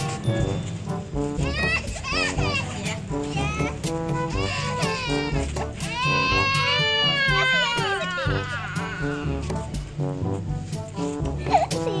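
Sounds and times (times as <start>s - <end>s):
toddler crying: 1.5s - 2.8s, 3.4s - 9.4s, 11.4s - 12.0s.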